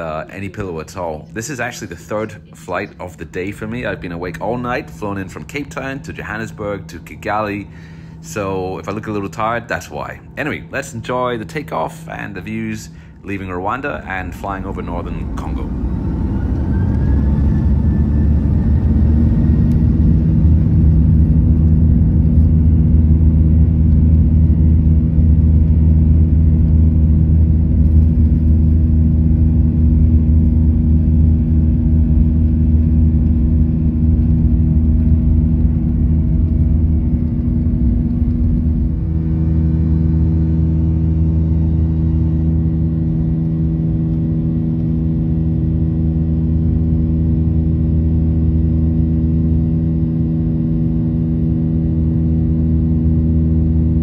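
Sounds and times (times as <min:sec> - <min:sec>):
jet engines droning: 0:00.0 - 0:54.0
takeoff roll rumble: 0:00.0 - 0:54.0.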